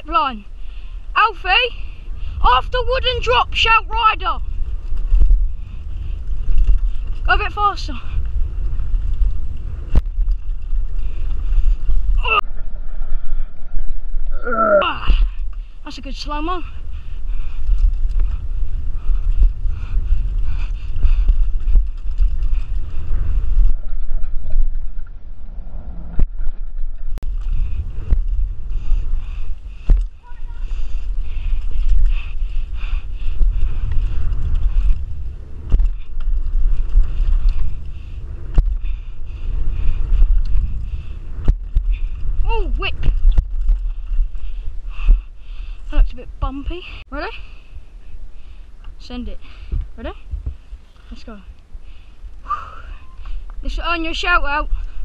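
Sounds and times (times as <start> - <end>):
bike rattling: 0.0 - 14.2, 14.8 - 55.0
wind rumble on microphone: 0.0 - 55.0
tyres rolling on dirt: 27.0 - 44.9.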